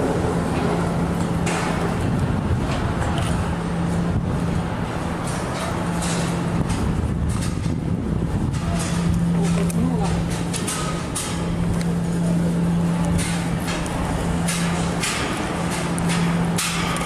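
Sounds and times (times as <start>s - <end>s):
footsteps on steel grating: 0.0s - 17.0s
traffic noise: 0.0s - 17.0s.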